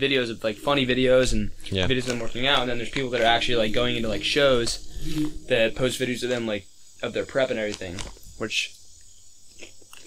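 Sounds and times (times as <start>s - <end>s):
person speaking: 0.0s - 8.8s
crickets chirping: 0.0s - 10.0s.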